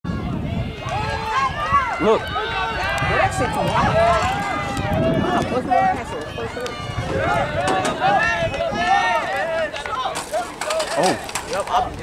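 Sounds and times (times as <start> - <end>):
spectators shouting: 0.1 - 11.7.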